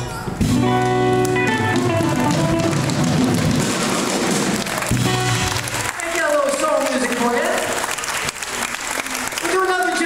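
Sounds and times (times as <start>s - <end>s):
blues-soul band playing: 0.0s - 6.0s
electric guitar: 0.4s - 6.0s.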